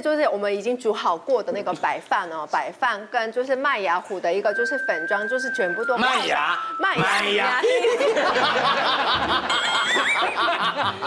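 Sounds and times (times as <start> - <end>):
people laughing: 7.0 - 11.0.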